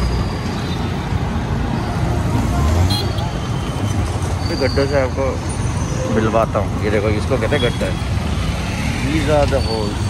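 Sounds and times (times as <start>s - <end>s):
traffic: 0.0s - 10.0s.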